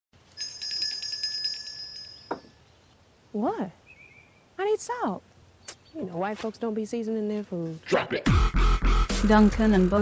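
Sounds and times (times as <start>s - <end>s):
small bells jingling: 0.3s - 2.6s.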